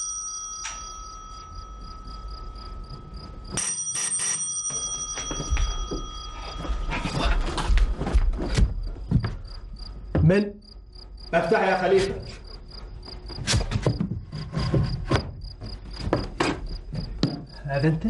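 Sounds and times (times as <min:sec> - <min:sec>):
crickets chirping: 0:00.9 - 0:03.6, 0:05.3 - 0:18.0
high-pitched whine: 0:01.4 - 0:03.7
knocking on a door: 0:10.1 - 0:10.4.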